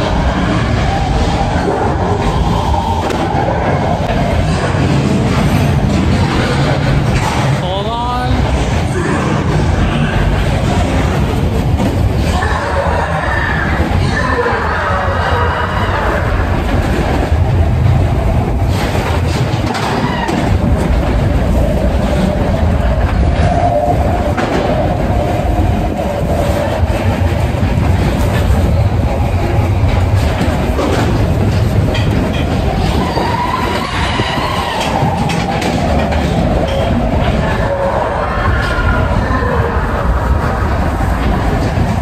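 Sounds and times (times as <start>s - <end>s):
roller coaster rumbling on track: 0.0s - 42.0s.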